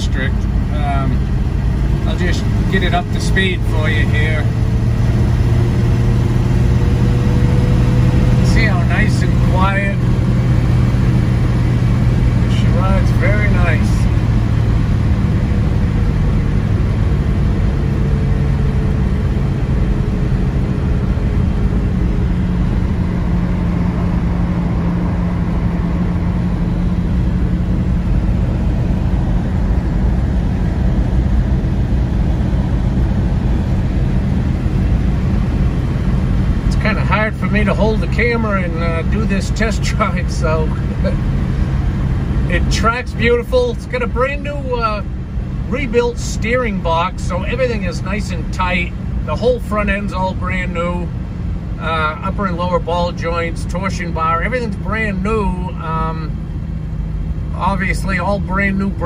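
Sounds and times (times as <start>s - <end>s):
car engine and road noise: 0.0s - 59.0s.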